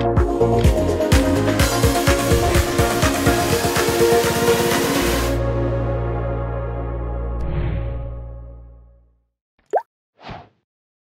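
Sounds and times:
background music: 0:00.0 - 0:09.1.

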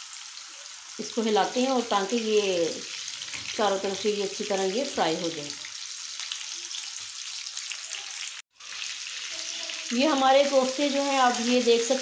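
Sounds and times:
meat sizzling in hot oil: 0:00.0 - 0:12.0.

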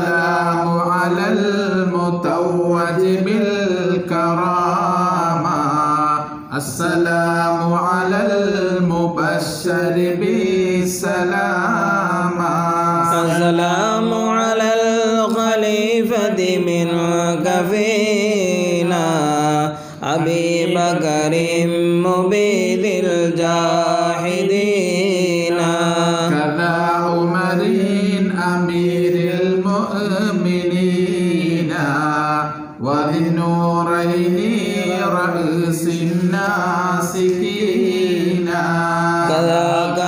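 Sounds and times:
melodic chanting: 0:00.0 - 0:40.0.

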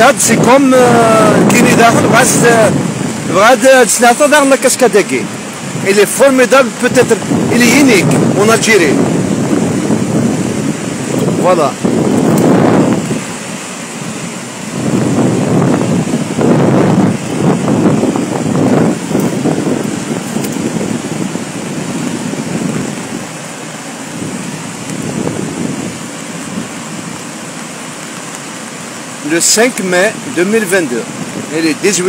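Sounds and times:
waterfall roaring: 0:00.0 - 0:32.0
wind buffeting microphone: 0:00.0 - 0:32.0.

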